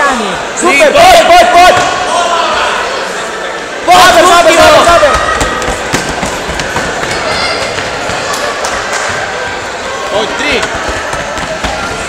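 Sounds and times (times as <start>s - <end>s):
children's voices: 5.0s - 12.0s.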